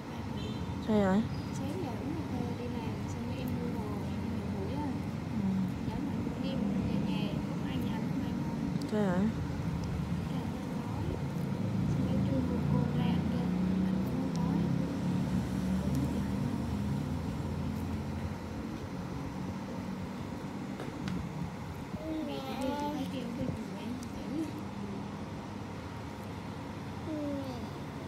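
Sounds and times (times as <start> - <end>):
low steady rumble: 0.0 - 28.0.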